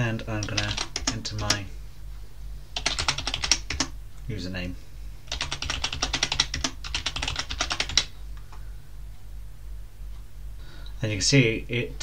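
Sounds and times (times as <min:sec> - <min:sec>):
computer keyboard typing: 0:00.4 - 0:01.6, 0:02.8 - 0:03.9, 0:05.3 - 0:08.1.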